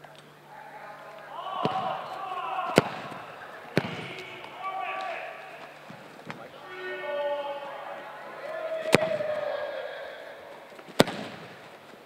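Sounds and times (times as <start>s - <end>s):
voices calling out: 0.0s - 12.0s
footballs being kicked: 1.5s - 6.5s, 8.8s - 9.4s, 10.8s - 12.0s.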